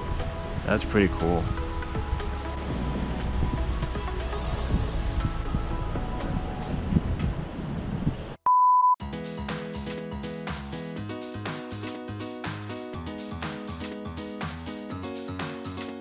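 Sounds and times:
quiet background music: 0:00.0 - 0:07.5
wind on microphone: 0:01.4 - 0:08.4
loud steady beep: 0:08.5 - 0:09.0
music with a beat: 0:09.0 - 0:16.0.

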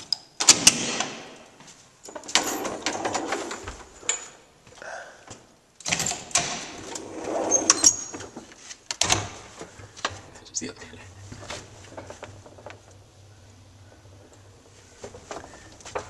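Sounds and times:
metal elevator gate rattling: 0:02.0 - 0:04.5, 0:05.8 - 0:16.0.

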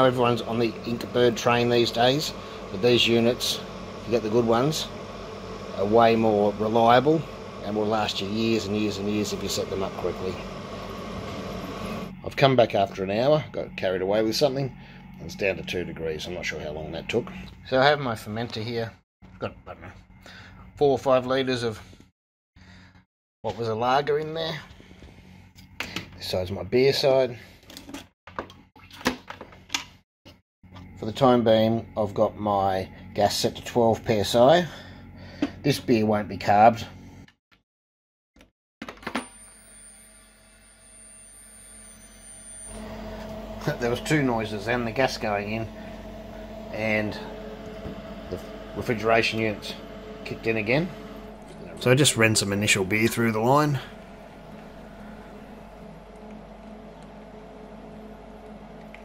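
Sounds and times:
refrigeration unit humming: 0:00.0 - 0:21.4, 0:39.3 - 0:59.0.

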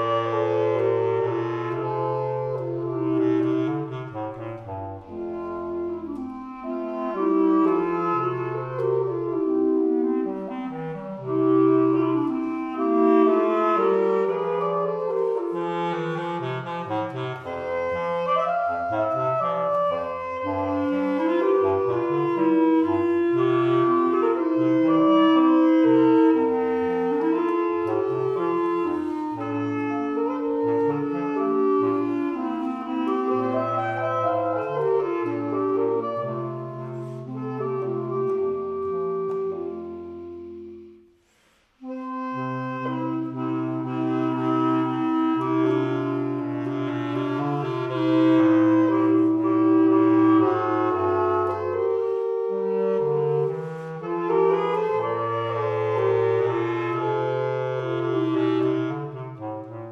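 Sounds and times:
basset horns playing chamber music: 0:00.0 - 0:59.9.

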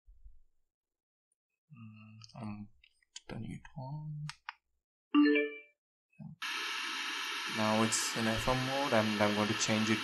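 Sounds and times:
radio static hiss: 0:06.4 - 0:10.0.

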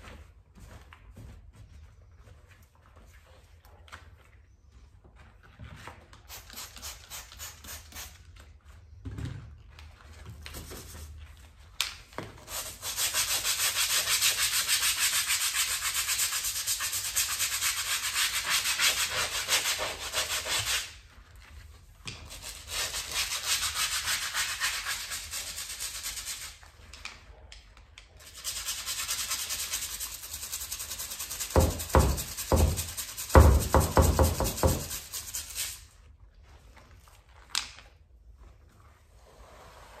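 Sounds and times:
bristle brush scrubbing: 0:28.2 - 0:36.0.

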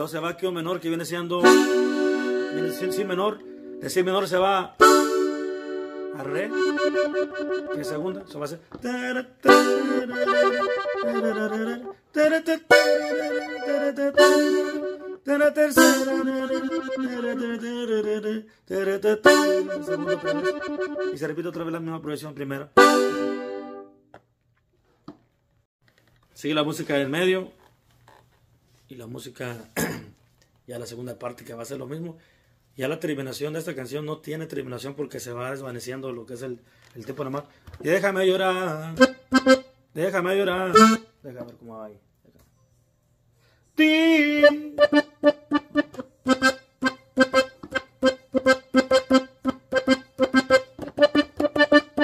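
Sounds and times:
button accordion chords: 0:01.4 - 0:18.2, 0:18.8 - 0:21.7, 0:22.8 - 0:23.9, 0:38.6 - 0:39.7, 0:40.5 - 0:41.1, 0:44.0 - 0:52.0.

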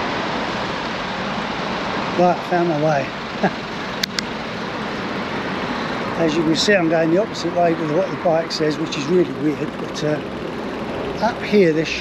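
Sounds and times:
traffic: 0:00.0 - 0:12.0
sharp clicks: 0:04.0 - 0:04.3.

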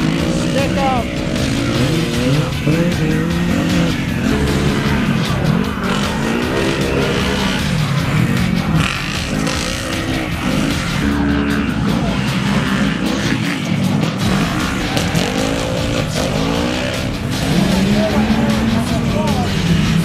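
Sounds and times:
race engines revving: 0:00.0 - 0:20.0.

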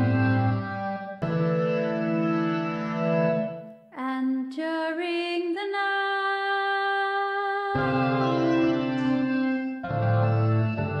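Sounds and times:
electronic keyboard chords: 0:00.0 - 0:03.8, 0:07.7 - 0:11.0
synth note sliding up: 0:07.8 - 0:11.0.

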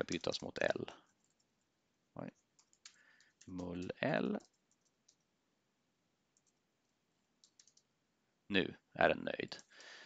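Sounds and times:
computer keyboard key clicks: 0:07.4 - 0:07.9.

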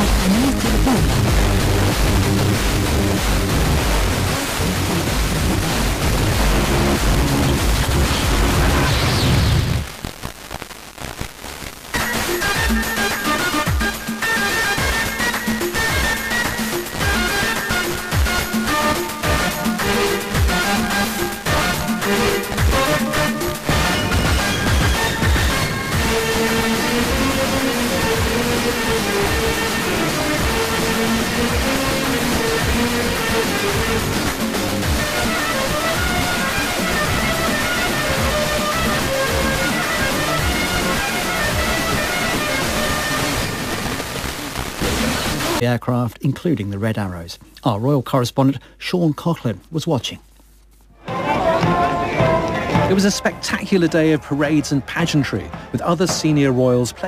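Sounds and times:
radio hiss: 0:00.0 - 0:45.8
music on weak radio signal: 0:00.0 - 0:47.6, 0:50.0 - 0:57.0.

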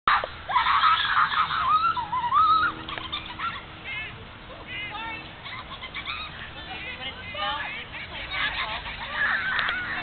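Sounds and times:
gulls calling: 0:00.1 - 0:10.0.

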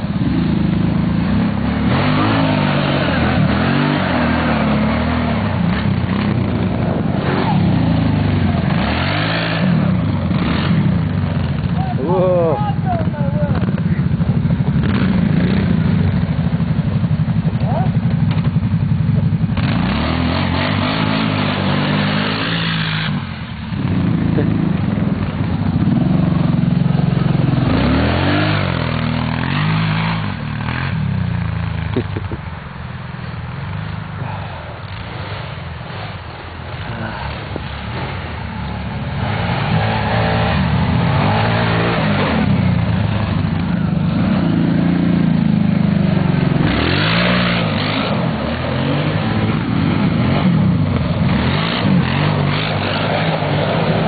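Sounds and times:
atv engines revving: 0:00.0 - 0:54.0.

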